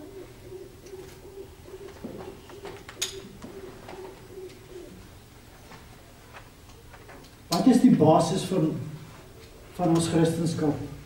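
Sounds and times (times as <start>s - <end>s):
dove cooing: 0.0s - 7.5s.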